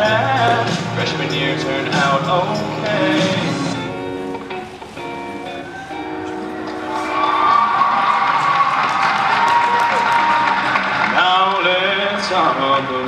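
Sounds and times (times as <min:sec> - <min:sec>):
man's voice: 0:00.0 - 0:03.9, 0:11.1 - 0:13.0
music backing track: 0:00.0 - 0:13.0
audience clapping and cheering: 0:05.6 - 0:12.6.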